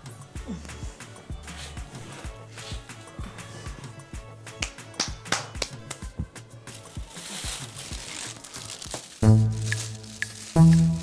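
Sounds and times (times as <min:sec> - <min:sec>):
background music with steady beat: 0:00.0 - 0:11.0
plastic bag crinkling: 0:06.7 - 0:11.0.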